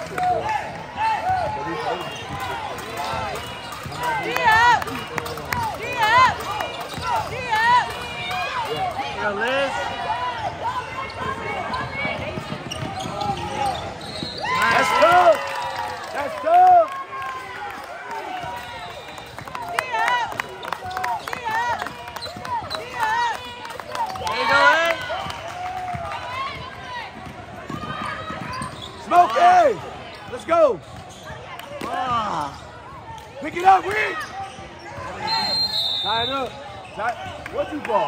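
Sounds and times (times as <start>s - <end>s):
sneakers squeaking: 0.7s - 9.2s, 10.0s - 16.2s, 17.8s - 37.8s
basketball bouncing: 11.2s - 14.0s, 25.9s - 29.0s.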